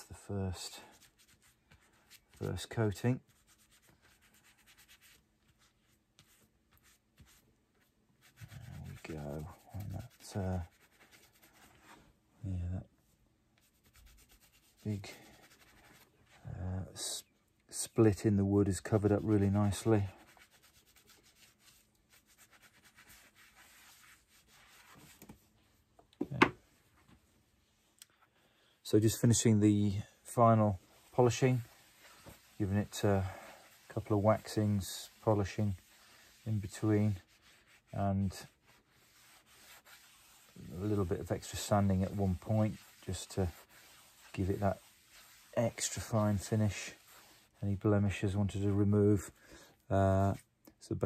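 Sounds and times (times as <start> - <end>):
man talking: 0.0 - 0.9, 2.4 - 3.2, 8.6 - 10.7, 12.4 - 12.9, 16.4 - 20.2, 28.8 - 31.7, 32.6 - 35.8, 36.4 - 37.2, 38.0 - 38.5, 40.6 - 43.6, 44.3 - 44.8, 45.6 - 47.0, 47.6 - 51.0
cloth rubbing on wood: 0.6 - 12.1, 13.6 - 16.6, 18.8 - 27.9, 28.8 - 49.4.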